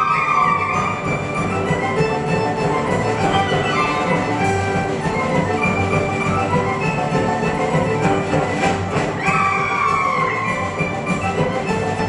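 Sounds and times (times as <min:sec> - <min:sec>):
folk orchestra playing dance tune: 0:00.0 - 0:12.0.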